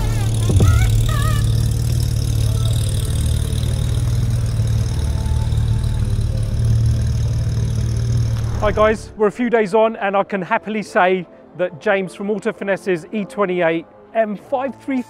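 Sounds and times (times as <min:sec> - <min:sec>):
car engine running at low revs: 0:00.0 - 0:09.2.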